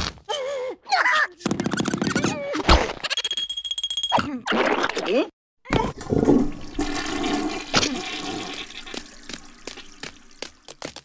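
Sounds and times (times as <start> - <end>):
rushing water: 5.9 - 11.0.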